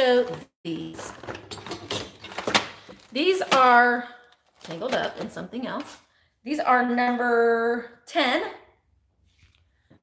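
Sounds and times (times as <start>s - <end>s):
rustling of objects: 0.0s - 6.2s.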